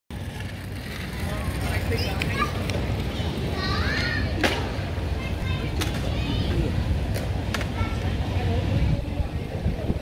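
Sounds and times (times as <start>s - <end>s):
faint distant voices: 0.2s - 10.0s.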